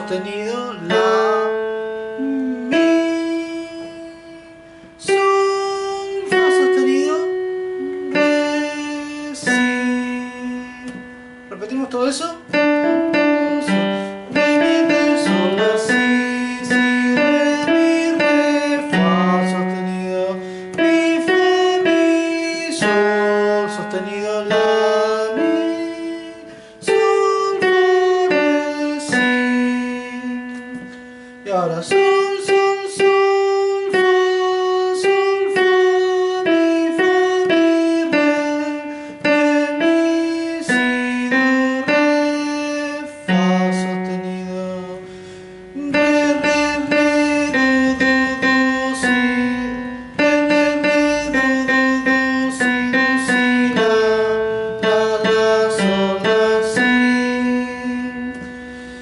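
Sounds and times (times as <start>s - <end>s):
slow digital piano melody: 0.0s - 59.0s.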